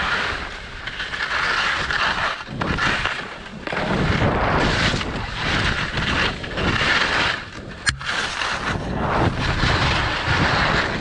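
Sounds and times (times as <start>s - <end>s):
wind buffeting microphone: 2.5s - 11.0s.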